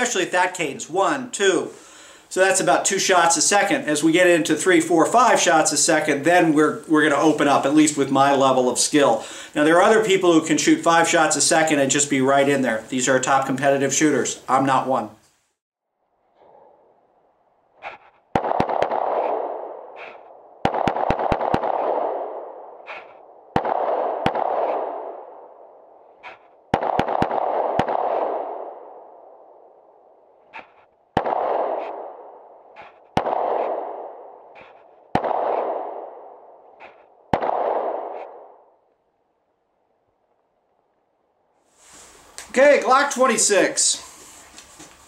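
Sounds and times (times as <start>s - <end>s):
pistol shots echoing: 18.3s - 19.8s, 20.6s - 25.5s, 26.7s - 29.0s, 31.2s - 32.4s, 33.1s - 36.5s, 37.3s - 38.5s.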